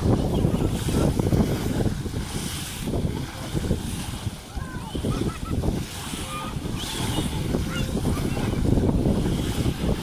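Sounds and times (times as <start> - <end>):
choppy sea and surf: 0.0 - 10.0
wind buffeting microphone: 0.0 - 10.0.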